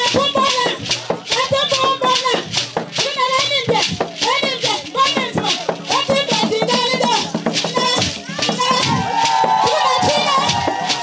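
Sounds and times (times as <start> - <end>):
shaken rattles: 0.0 - 11.0
traditional singing voices: 0.0 - 11.0.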